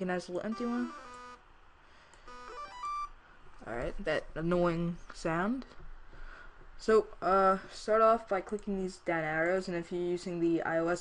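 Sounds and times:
synthesizer notes: 0:00.5 - 0:01.4, 0:02.3 - 0:03.2.

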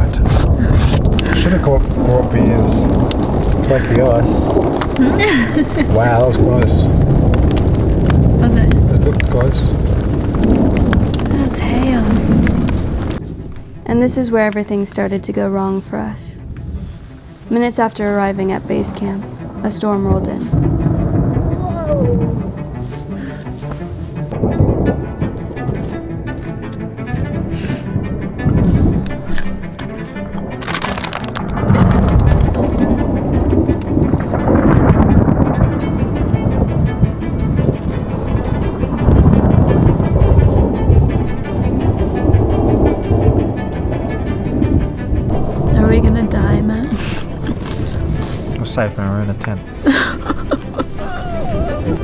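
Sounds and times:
sharp crack: 0:00.0 - 0:14.8, 0:18.0 - 0:52.0
thunder: 0:00.0 - 0:15.0, 0:16.4 - 0:23.4, 0:24.2 - 0:25.8, 0:27.1 - 0:29.2, 0:30.5 - 0:52.0
music with low bowed strings: 0:00.0 - 0:52.0
volcano rumbling: 0:00.0 - 0:52.0.

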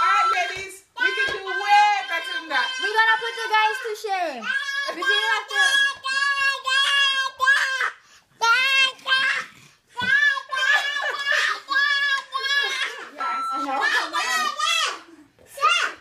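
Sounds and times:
toddler calling out: 0:00.0 - 0:13.1.

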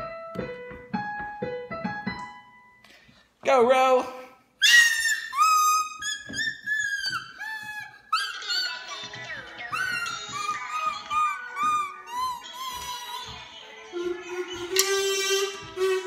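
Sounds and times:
toy wind instrument high notes: 0:04.6 - 0:16.0.

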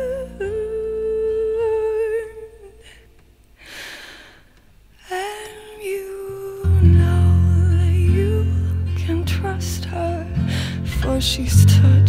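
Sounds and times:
woman humming: 0:05.1 - 0:12.0.

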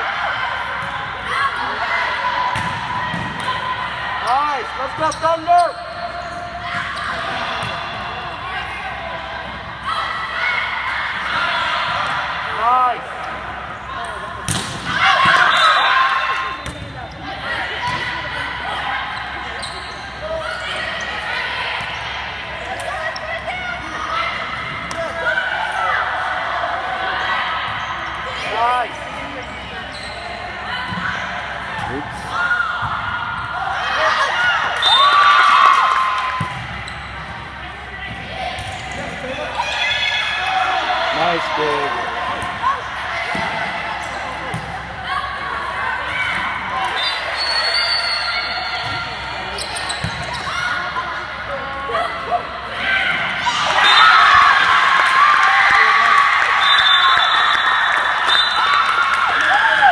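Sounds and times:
volleyball being struck: 0:14.4 - 0:15.5
sneakers squeaking on court: 0:19.2 - 0:21.2, 0:29.2 - 0:32.0, 0:36.4 - 0:39.4, 0:47.0 - 0:51.0.

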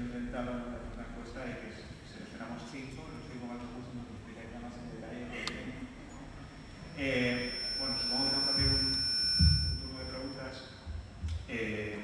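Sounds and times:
high-pitched whine: 0:06.5 - 0:10.9.

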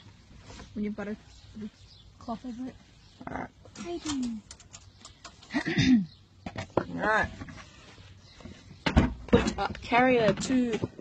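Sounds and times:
person speaking: 0:00.7 - 0:04.5.

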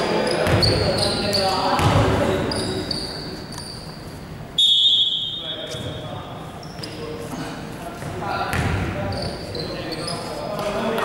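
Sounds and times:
shoes squeaking on court: 0:00.0 - 0:04.5, 0:05.1 - 0:10.8
players' voices: 0:00.0 - 0:11.0.

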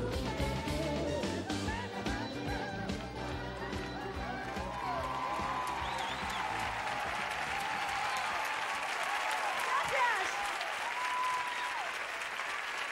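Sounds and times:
music: 0:00.0 - 0:08.0
audience applauding: 0:03.0 - 0:12.9.

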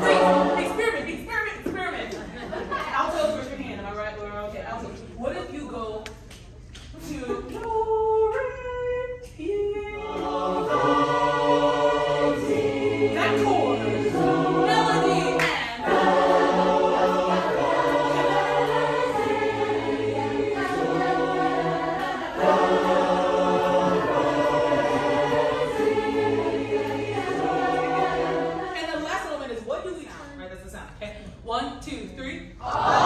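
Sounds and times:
choir singing in harmony: 0:00.0 - 0:01.3, 0:09.6 - 0:29.2, 0:32.6 - 0:33.0.

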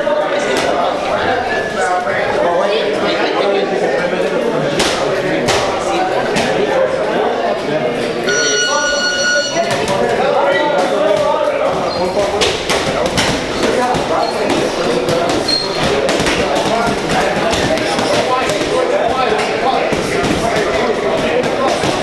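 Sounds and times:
chatter of voices: 0:00.0 - 0:22.0.

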